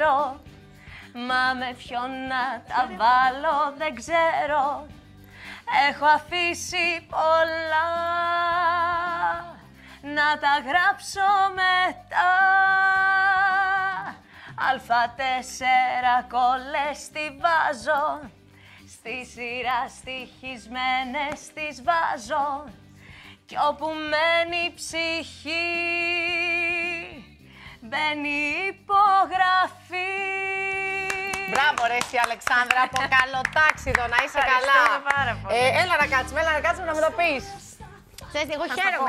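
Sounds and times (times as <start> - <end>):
woman singing a cappella: 0.0 - 39.0
singer breathing in: 0.6 - 1.1, 5.0 - 5.7, 9.6 - 10.0, 14.2 - 14.6, 18.4 - 18.9, 22.8 - 23.5, 27.4 - 27.8.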